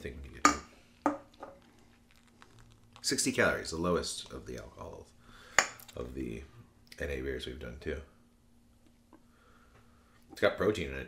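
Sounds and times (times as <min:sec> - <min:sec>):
small clicks and rustles: 0:01.5 - 0:03.1.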